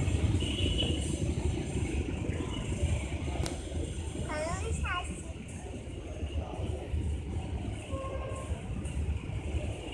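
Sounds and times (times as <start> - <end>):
train coaches rumbling over rails: 0.0 - 9.9.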